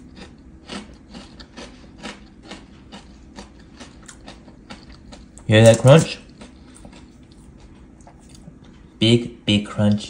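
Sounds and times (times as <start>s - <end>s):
crunchy food being chewed: 0.0s - 8.9s.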